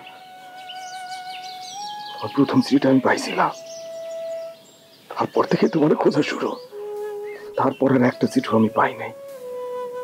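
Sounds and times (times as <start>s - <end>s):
bird chirps: 0.0s - 10.0s
soft background music: 0.0s - 10.0s.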